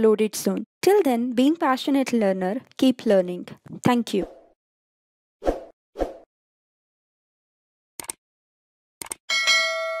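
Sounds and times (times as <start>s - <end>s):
bright bell chime: 9.3s - 10.0s.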